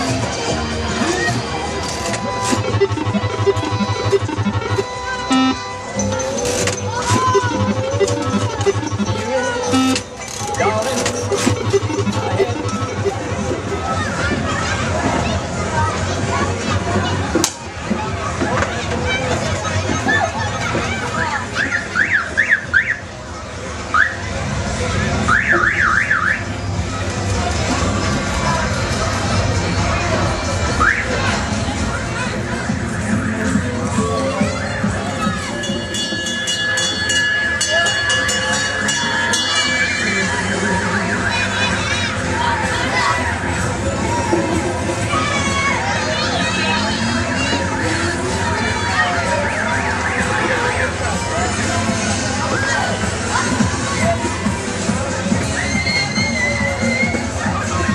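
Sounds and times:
funfair din: 0:00.0 - 0:57.9
electronic toy siren whooping: 0:02.6 - 0:05.6, 0:07.0 - 0:10.0.

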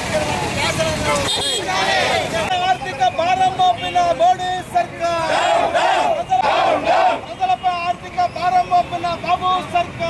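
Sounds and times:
crowd shouting a slogan: 0:01.4 - 0:03.4, 0:04.4 - 0:07.8.

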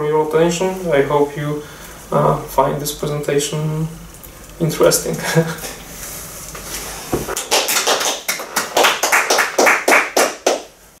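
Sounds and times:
audience clapping: 0:07.3 - 0:10.7.

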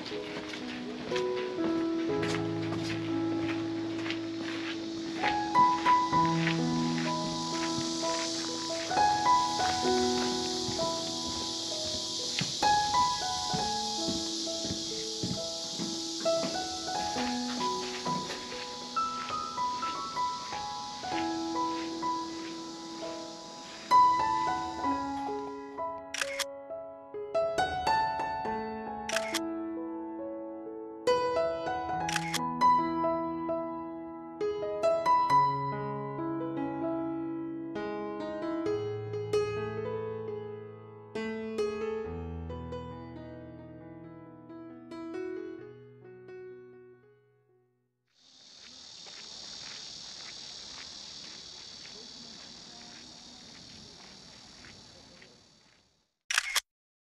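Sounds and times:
sustained keyboard music: 0:00.0 - 0:26.4
faint outdoor ambience: 0:00.0 - 0:26.5, 0:48.3 - 0:56.6
short crisp clicks: 0:26.1 - 0:26.5, 0:29.1 - 0:29.4, 0:56.3 - 0:56.7.

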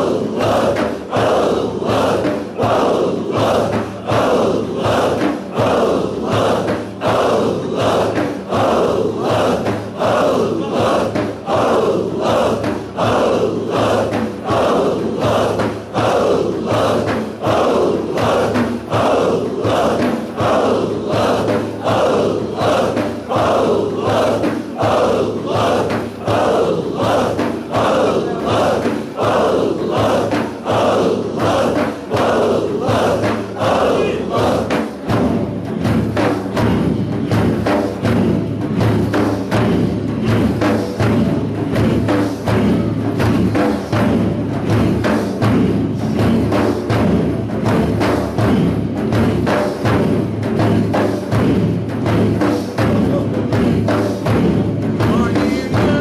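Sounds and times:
group chanting in unison: 0:00.0 - 0:56.0.

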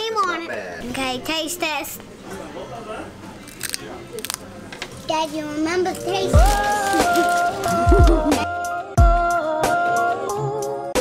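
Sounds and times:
child crunching tortilla chip: 0:03.4 - 0:04.4, 0:05.0 - 0:08.1.

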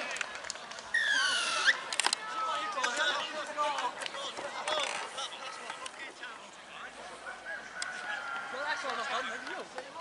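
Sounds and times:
players and spectators shouting: 0:00.9 - 0:10.0.

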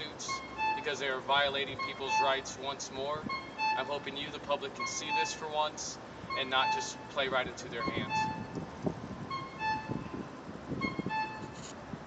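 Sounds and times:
two-note electronic tone: 0:00.0 - 0:00.9, 0:01.7 - 0:02.4, 0:03.2 - 0:05.5, 0:06.3 - 0:08.6, 0:09.3 - 0:11.6
low rumbling street noise: 0:00.0 - 0:12.0.

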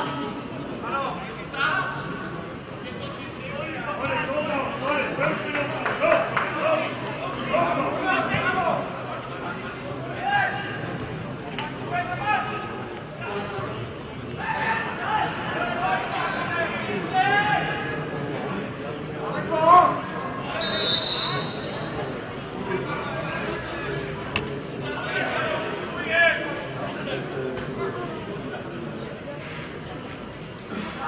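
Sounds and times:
people talking and calling out: 0:00.0 - 0:31.0.

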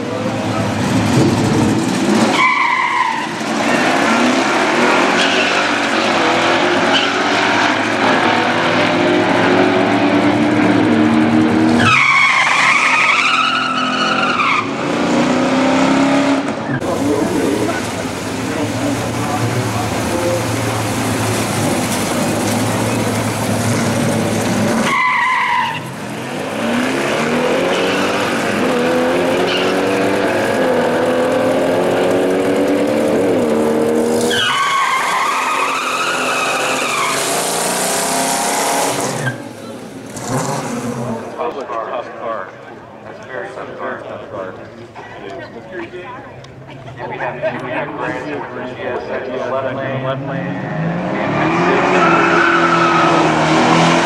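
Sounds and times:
tires squealing: 0:00.0 - 0:41.5, 0:49.4 - 0:54.0
car engines revving hard: 0:00.0 - 0:41.7, 0:46.5 - 0:54.0.

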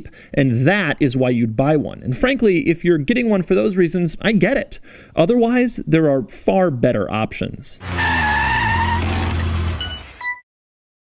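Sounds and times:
car engine running: 0:07.8 - 0:10.2
tires squealing: 0:07.8 - 0:10.2.

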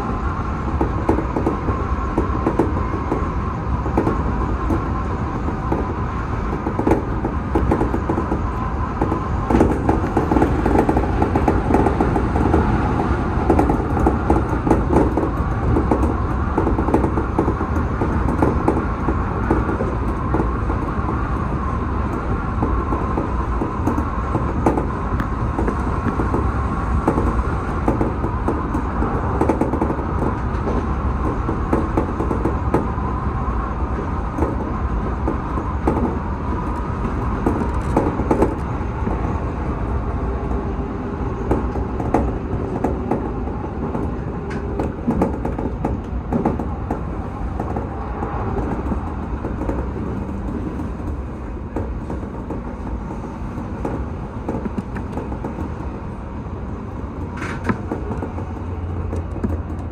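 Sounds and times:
train wheel-on-rail rumble: 0:00.0 - 0:59.9
track clicks and knocks: 0:00.7 - 0:33.2, 0:33.9 - 0:59.9.

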